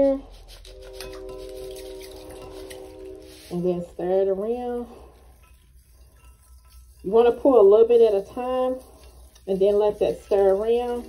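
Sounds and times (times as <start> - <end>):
distant train horn: 0.6 - 5.2.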